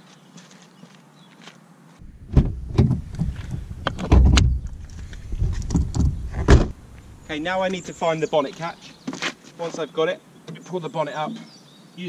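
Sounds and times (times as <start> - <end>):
car door opening and shutting: 2.0 - 7.8
clicks and thuds: 2.0 - 7.8
low rumble: 2.0 - 8.0.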